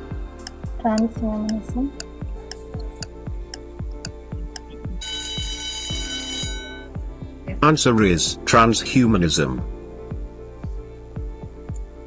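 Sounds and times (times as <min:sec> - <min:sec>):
low ticking thumps: 0:00.0 - 0:07.7, 0:09.6 - 0:12.0
bell-like alarm ring: 0:05.0 - 0:06.9.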